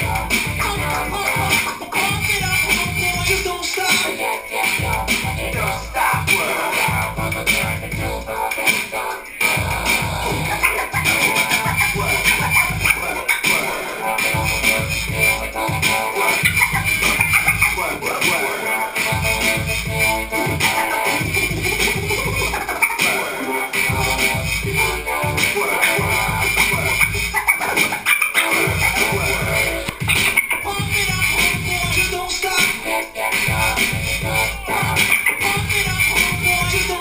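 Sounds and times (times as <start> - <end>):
hip hop beat with heavy bass kicks: 0.0 - 37.0
turntable scratching: 0.0 - 37.0.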